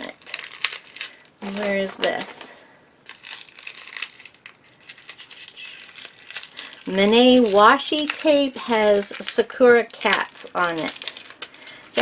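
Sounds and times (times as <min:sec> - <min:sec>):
notebook pages rustling: 0:00.4 - 0:02.5, 0:03.1 - 0:12.0.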